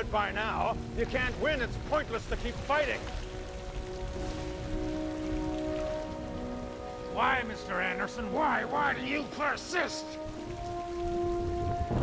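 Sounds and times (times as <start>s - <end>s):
heavy rain falling: 0.0s - 12.0s
low held film score notes: 0.0s - 12.0s.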